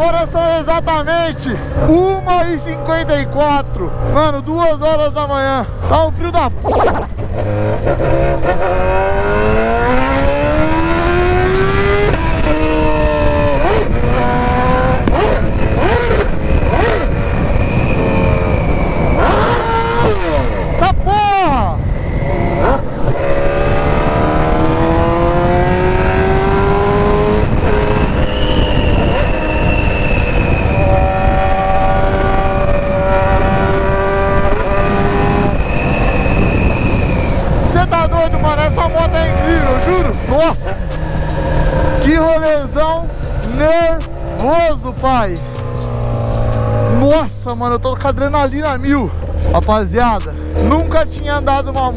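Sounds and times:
motorcycle engine accelerating: 0.9s - 20.8s, 21.8s - 51.9s
wind rushing over microphone: 5.7s - 51.9s.

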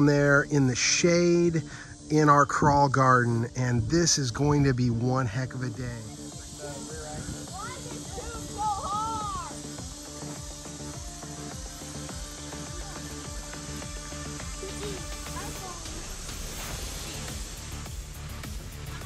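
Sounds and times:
background music with bass tones: 0.0s - 19.0s.

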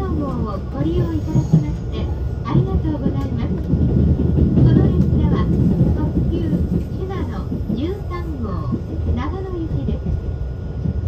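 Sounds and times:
people talking: 0.0s - 3.8s, 4.5s - 10.2s
train running rumble: 0.0s - 11.0s.

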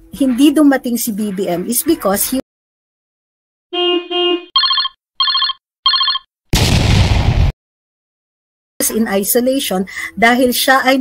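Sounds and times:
short trilling ring-like beeps: 4.6s - 6.2s.

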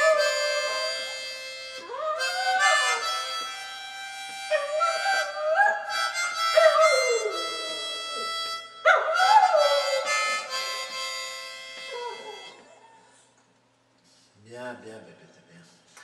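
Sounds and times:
dog howling: 0.0s - 3.7s, 4.5s - 10.6s, 11.9s - 12.7s
harmonica chords: 0.0s - 13.2s.

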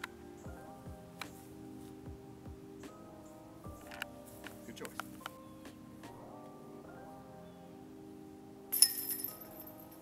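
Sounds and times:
golf disc striking basket chains: 8.7s - 10.0s
metal chains jangling: 8.7s - 10.0s.

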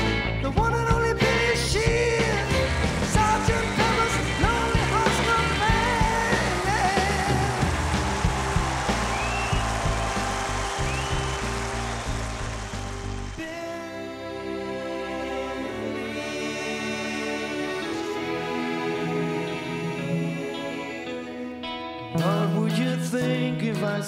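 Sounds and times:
orchestra with rock band: 0.0s - 24.0s
person singing: 0.4s - 7.8s, 13.4s - 24.0s
drum hits: 7.6s - 13.3s.

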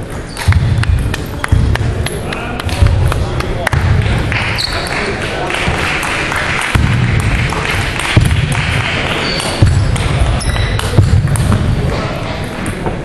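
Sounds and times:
echoing murmur of voices: 0.0s - 13.0s
table tennis balls bouncing: 0.0s - 13.0s.

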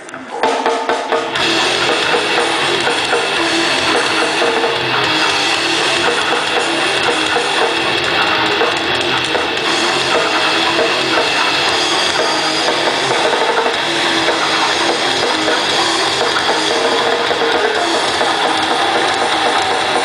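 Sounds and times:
grindcore band playing live: 0.0s - 20.0s.

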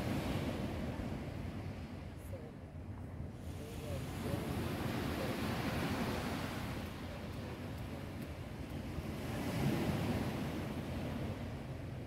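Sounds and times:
sea surf washing: 0.0s - 2.4s, 3.3s - 12.0s
wind rumbling on microphone: 0.0s - 12.0s.

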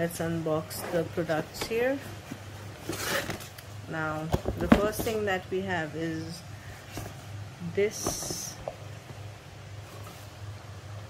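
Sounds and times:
cardboard box rustling and scraping: 0.7s - 3.5s, 4.4s - 5.3s, 9.8s - 10.5s.

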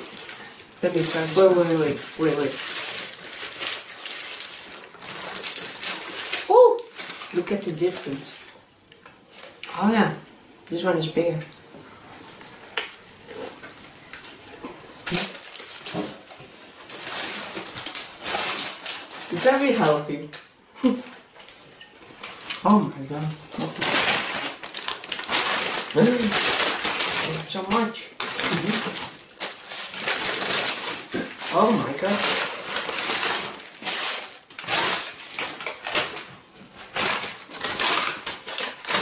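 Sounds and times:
paper wrappers rustling: 0.0s - 39.0s
people chewing burgers: 11.6s - 16.4s.

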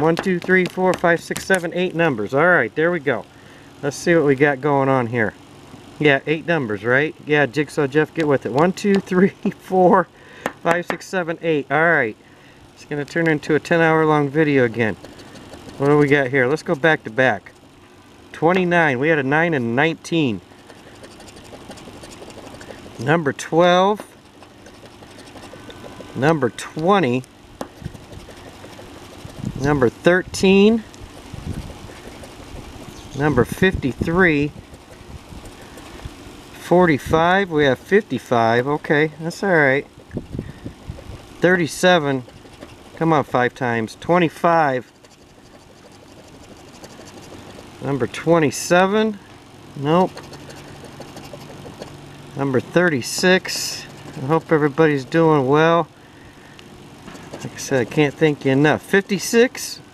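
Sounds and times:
metal wrench scratching ticket: 0.0s - 2.0s, 12.8s - 17.6s, 18.4s - 49.2s, 49.8s - 55.2s, 57.1s - 59.7s
steady low hum: 0.0s - 59.9s.

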